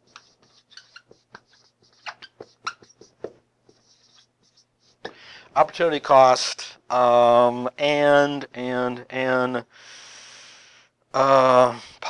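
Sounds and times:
marker writing on whiteboard: 0.0s - 5.8s
faint room hum: 0.0s - 12.0s.

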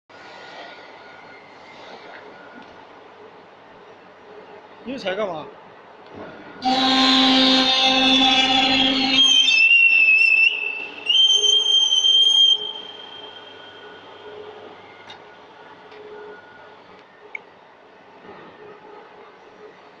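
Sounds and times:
pipe bender squealing: 6.6s - 14.0s.

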